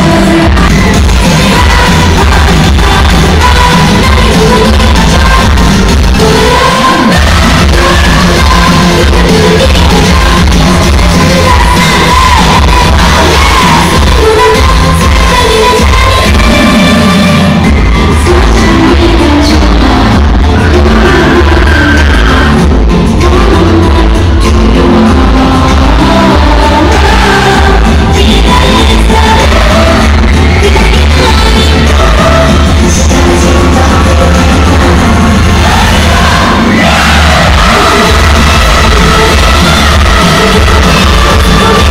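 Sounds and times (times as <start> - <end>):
pop concert music over loudspeakers: 0.0 - 41.9
women singing over a beat: 0.0 - 41.9.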